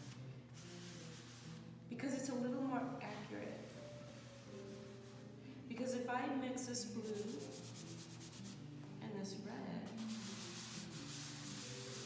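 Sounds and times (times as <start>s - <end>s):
pastel scratching on paper: 0.0s - 1.6s, 7.0s - 8.6s, 9.9s - 12.0s.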